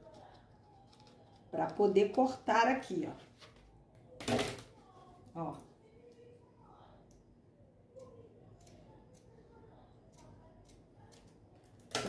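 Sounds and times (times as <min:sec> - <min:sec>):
scissors snipping fabric: 0:08.0 - 0:09.4, 0:10.1 - 0:12.0.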